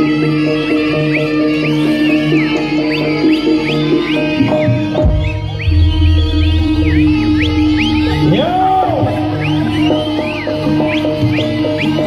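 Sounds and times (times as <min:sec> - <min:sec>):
reedy lead melody: 0:00.0 - 0:12.0
gong and drum tones: 0:04.6 - 0:10.2
deep low tone: 0:05.0 - 0:09.4.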